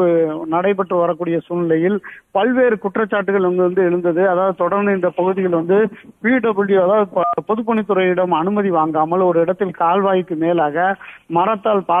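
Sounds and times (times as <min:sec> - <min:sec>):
news presenter speaking: 0:00.0 - 0:12.0.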